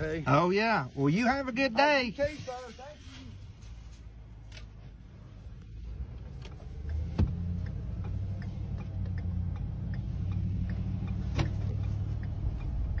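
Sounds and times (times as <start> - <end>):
car engine rumbling: 0.0 - 13.0
light regular ticking: 4.4 - 13.0.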